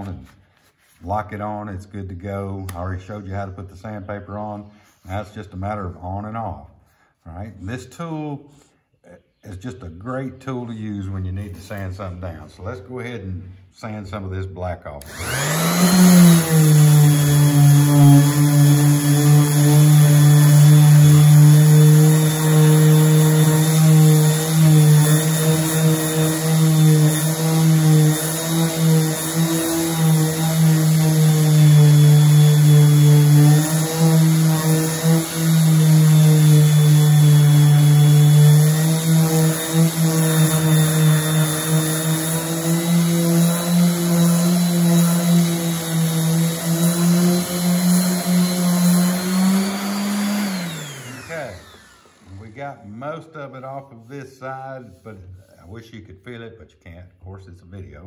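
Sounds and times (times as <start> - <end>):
sander winding down: 15.0 - 53.0
orbital sander on wood: 15.0 - 53.3.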